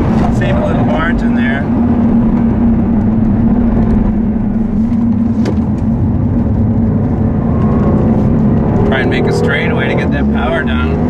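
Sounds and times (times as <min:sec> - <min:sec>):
car engine from inside cabin: 0:00.0 - 0:11.0.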